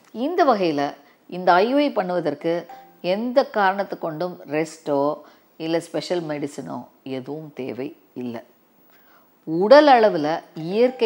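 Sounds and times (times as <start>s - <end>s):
woman speaking: 0.1s - 8.5s, 9.4s - 11.0s.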